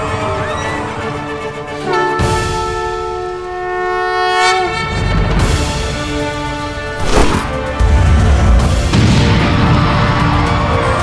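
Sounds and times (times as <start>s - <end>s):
horns sounding held chord: 1.8s - 6.3s.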